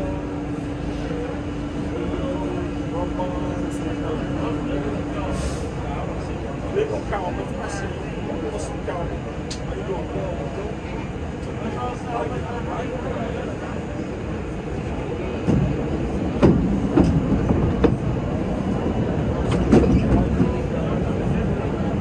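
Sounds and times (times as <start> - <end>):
faint voices: 0.0 - 22.0
subway car rumble: 0.0 - 22.0.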